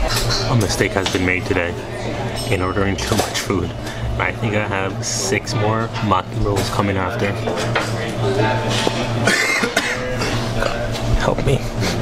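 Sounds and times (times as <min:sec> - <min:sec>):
man coughing: 0:09.2 - 0:10.8.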